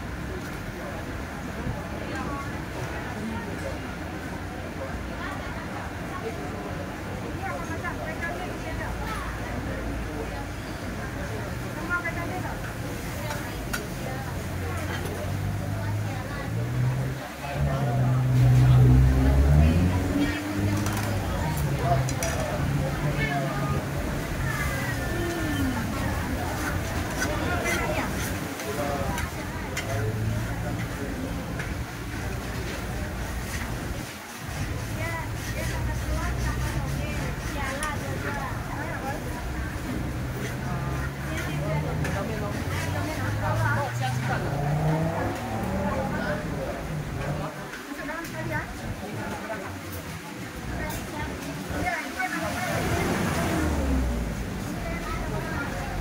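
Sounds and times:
people talking: 0.0 - 56.0
metal spatula scraping a wok: 26.5 - 31.0, 33.3 - 38.2
vehicle engine humming: 39.7 - 47.6.

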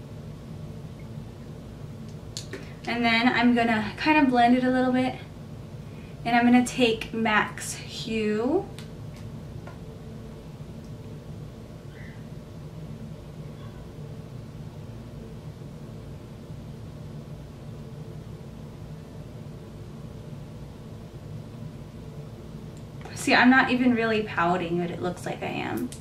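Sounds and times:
low hum with faint hiss: 0.0 - 26.0.

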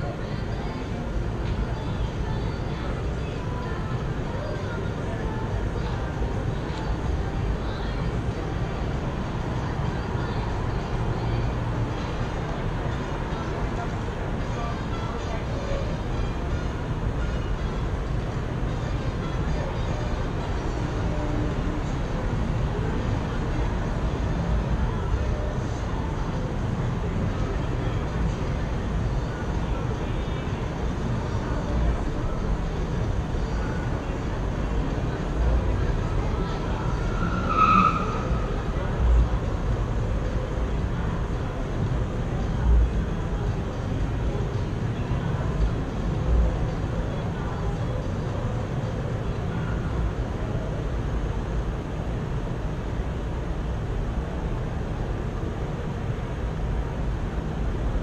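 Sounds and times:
indistinct voices: 0.0 - 58.0
high-pitched squeal: 36.6 - 38.8.

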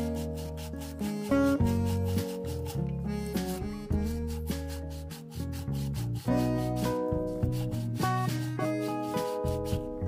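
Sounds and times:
background music: 0.0 - 10.0
finger rubbing bamboo cup: 0.0 - 10.0.

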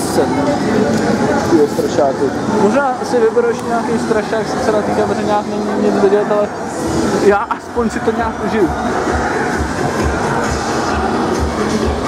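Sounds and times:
loud music with bass beat: 6.7 - 12.0.

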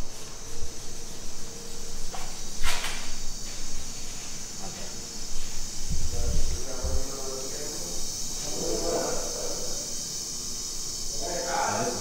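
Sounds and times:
steady high hiss: 0.0 - 12.0
indistinct voices talking: 5.9 - 12.0.

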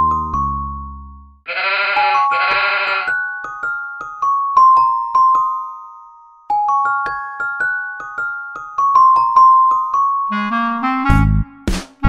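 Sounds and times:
sheep bleating: 1.5 - 3.2
children's tune on mallet instruments: 2.1 - 10.6.

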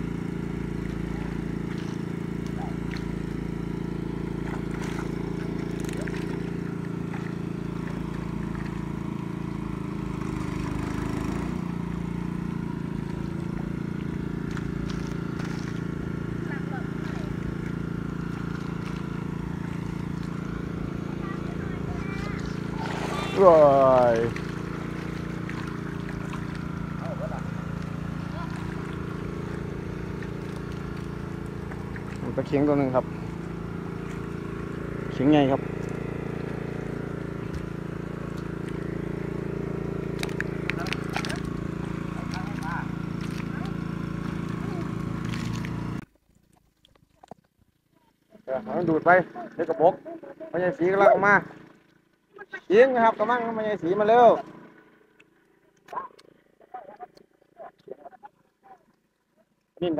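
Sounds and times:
small engine driving water pump: 0.0 - 59.9.

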